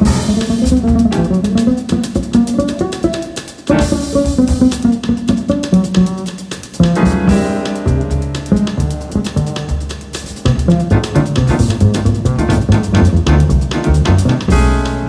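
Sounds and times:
drum kit: 0:00.0 - 0:15.0
plucked double bass: 0:00.0 - 0:15.0.

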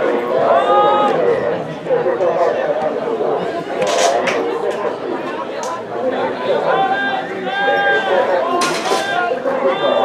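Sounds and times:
indistinct voices chattering: 0:00.0 - 0:10.0.

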